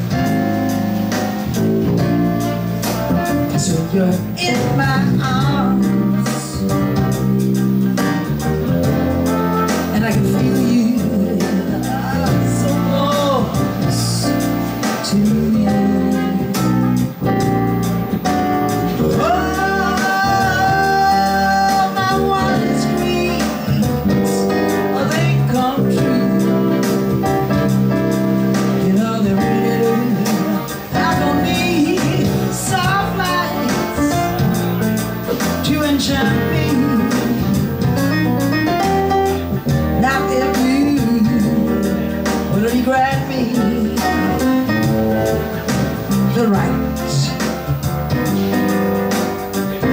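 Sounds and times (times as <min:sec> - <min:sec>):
electric bass guitar: 0:00.0 - 0:49.9
keyboard: 0:00.0 - 0:49.9
steady beat: 0:00.0 - 0:49.9
woman singing into microphone: 0:03.1 - 0:07.2, 0:09.6 - 0:17.0, 0:18.3 - 0:34.6, 0:35.3 - 0:49.9.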